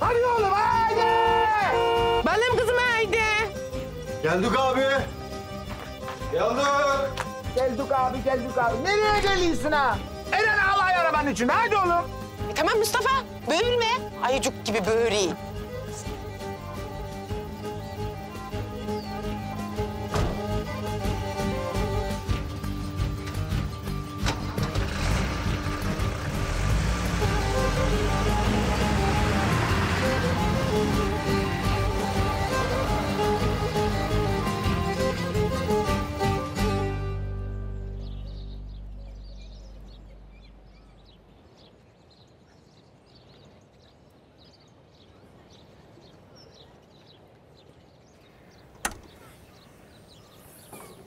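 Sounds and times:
background music sustained notes: 0:00.0 - 0:41.7
faint birdsong: 0:00.0 - 0:51.0
car engine and tyre noise: 0:23.2 - 0:34.4
tailgate latch click: 0:48.8 - 0:49.2.

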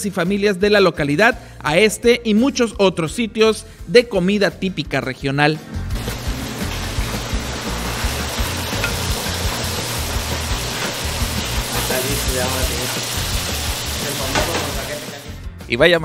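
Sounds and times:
seafood sizzling: 0:06.0 - 0:15.4.

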